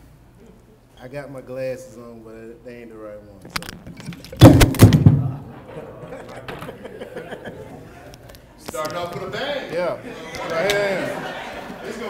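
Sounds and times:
microphone being knocked and handled: 3.6s - 5.5s.

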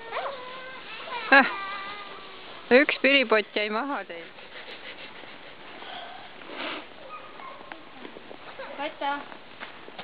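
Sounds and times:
breathy sniff: 4.1s - 7.0s.

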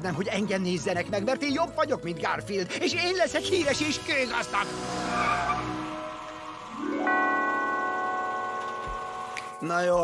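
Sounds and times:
bell-like chime chord: 6.6s - 10.0s.

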